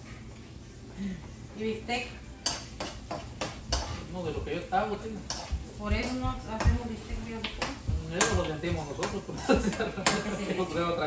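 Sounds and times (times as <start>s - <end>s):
knife chopping on cutting board: 2.5s - 4.0s, 5.3s - 10.3s.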